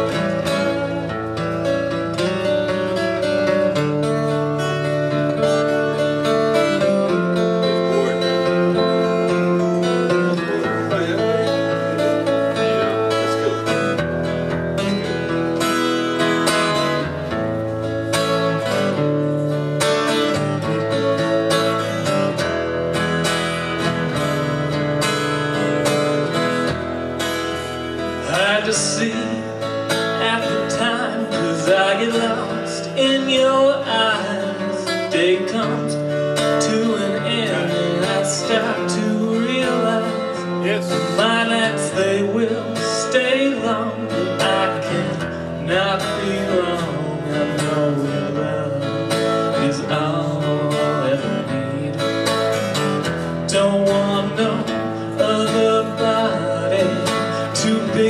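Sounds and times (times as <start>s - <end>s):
acoustic guitar blues: 0.0s - 58.0s.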